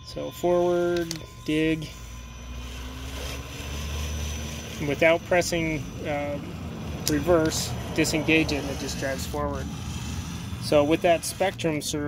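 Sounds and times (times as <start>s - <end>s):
toy car electric motor whine: 0.0s - 12.0s.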